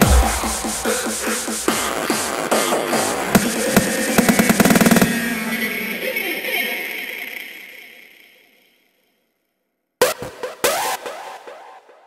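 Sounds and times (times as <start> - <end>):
hardstyle electronic music: 0.0 - 5.8, 10.0 - 12.0.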